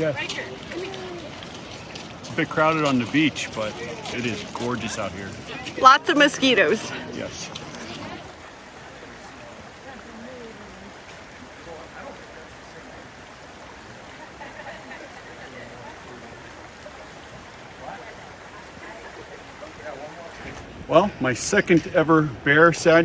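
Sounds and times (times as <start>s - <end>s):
creek rushing: 0.0s - 23.0s
faint low voices: 3.2s - 20.9s.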